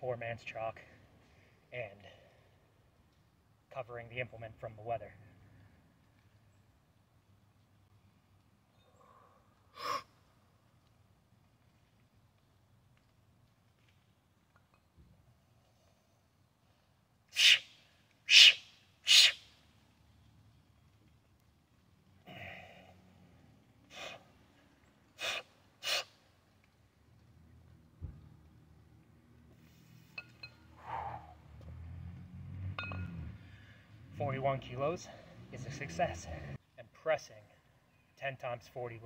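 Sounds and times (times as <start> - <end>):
sharp forceful breaths: 8.8 - 10.2, 23.9 - 24.4, 25.2 - 26.2, 30.7 - 31.5, 33.2 - 34.0
metallic kettlebell clinks: 32.8 - 33.2.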